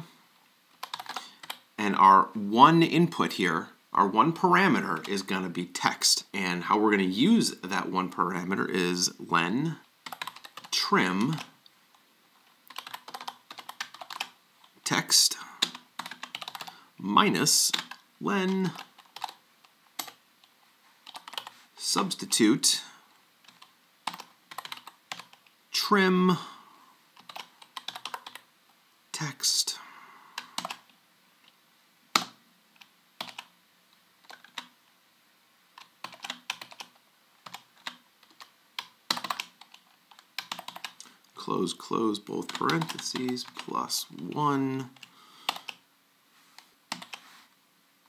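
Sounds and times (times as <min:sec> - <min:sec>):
computer keyboard keystrokes: 0:00.8 - 0:01.6, 0:10.1 - 0:10.7, 0:12.7 - 0:14.3, 0:15.6 - 0:16.7, 0:23.5 - 0:25.4, 0:27.2 - 0:28.4, 0:30.5 - 0:30.8, 0:35.8 - 0:41.0, 0:45.0 - 0:45.8, 0:46.9 - 0:47.2.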